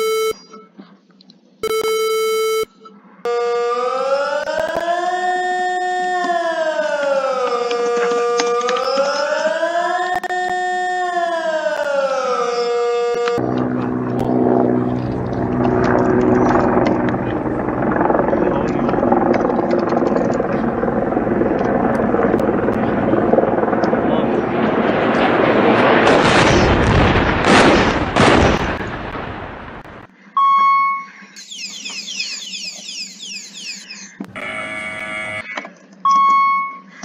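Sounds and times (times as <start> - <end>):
siren wailing: 3.3 - 24.5, 31.4 - 35.6
helicopter-like rumble: 13.2 - 27.4.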